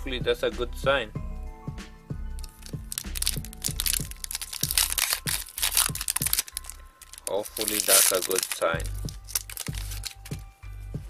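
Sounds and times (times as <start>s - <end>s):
background music with low beat: 0.0s - 11.0s
foil wrapper crinkling: 2.4s - 10.4s.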